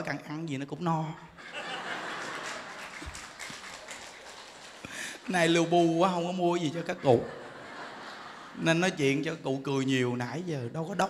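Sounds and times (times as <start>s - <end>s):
audience laughing: 1.4s - 5.3s, 6.6s - 9.3s
audience clapping: 1.6s - 5.9s.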